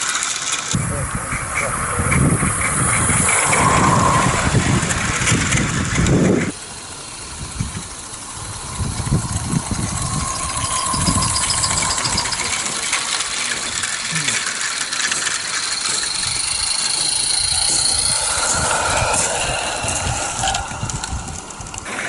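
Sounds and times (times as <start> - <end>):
model steam locomotive running: 0.0 - 22.0
wheels clattering on track: 0.0 - 22.0.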